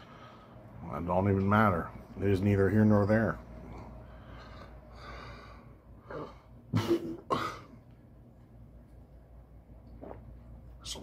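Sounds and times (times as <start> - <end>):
man coughing: 6.1 - 7.8.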